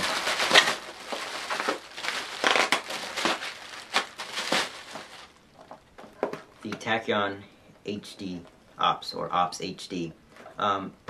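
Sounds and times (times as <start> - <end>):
bubble wrap crinkling and crackling: 0.0 - 6.6.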